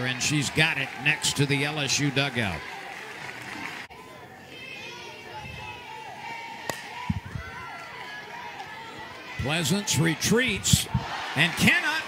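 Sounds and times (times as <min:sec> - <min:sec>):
murmur of crowd voices: 0:00.0 - 0:12.0
bat cracking ball: 0:06.6 - 0:07.2.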